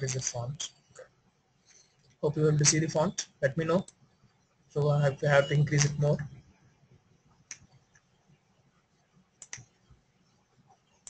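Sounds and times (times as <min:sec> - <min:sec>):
computer mouse clicks: 0:09.4 - 0:09.8.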